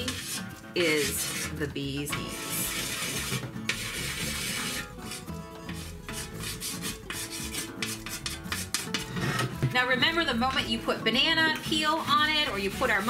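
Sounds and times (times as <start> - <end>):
chalk scraping on board: 0.0 - 9.5, 11.2 - 13.0.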